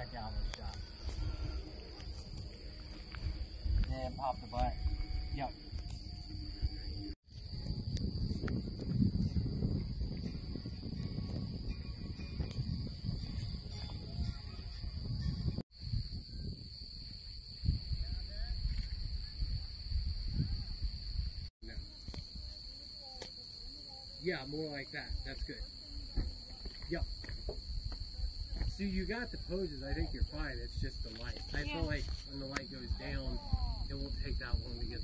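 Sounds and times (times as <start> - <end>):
wind buffeting microphone: 0.0 - 22.3, 25.1 - 35.0
insects droning: 0.0 - 35.0.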